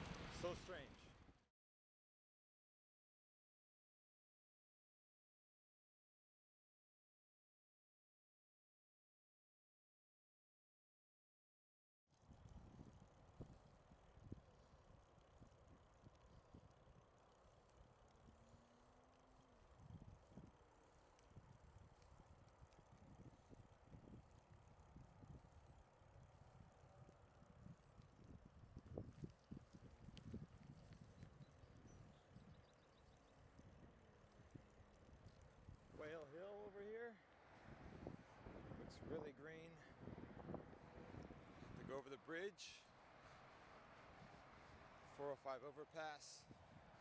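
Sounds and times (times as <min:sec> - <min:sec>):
wind and road rumble: 0:00.0 - 0:01.4, 0:19.6 - 0:45.4, 0:46.4 - 0:47.0.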